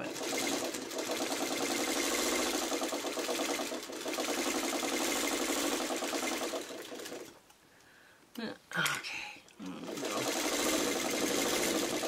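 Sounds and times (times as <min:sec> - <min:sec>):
sewing machine stitching: 0:00.0 - 0:07.4, 0:09.8 - 0:12.0.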